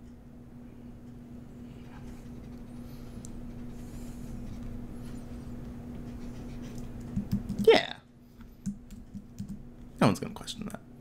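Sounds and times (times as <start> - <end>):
low steady hum: 0.0 - 11.0
computer keyboard clicks: 7.0 - 7.7, 8.6 - 9.6.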